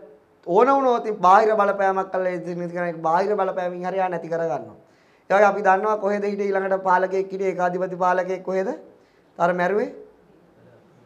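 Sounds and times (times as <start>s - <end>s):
man talking into microphone: 0.0s - 10.8s.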